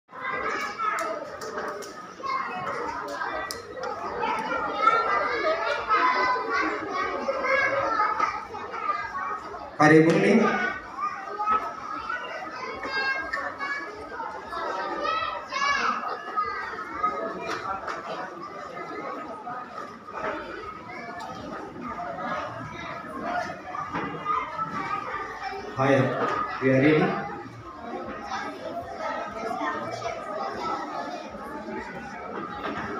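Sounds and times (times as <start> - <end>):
children chattering and calling out: 0.1 - 32.9.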